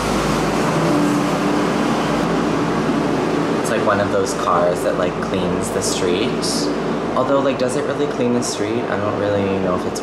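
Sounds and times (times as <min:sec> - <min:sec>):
street sweeper rushing noise: 0:00.0 - 0:10.0.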